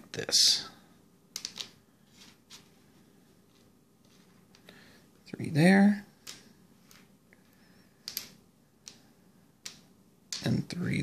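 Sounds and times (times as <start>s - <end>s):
wooden pieces clicking on board: 1.3s - 2.6s, 6.2s - 7.1s, 8.0s - 10.7s.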